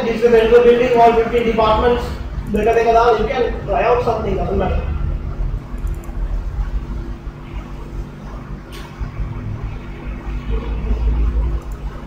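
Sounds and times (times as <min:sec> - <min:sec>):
low hum: 0:00.0 - 0:12.0
rumbling background: 0:00.0 - 0:12.0.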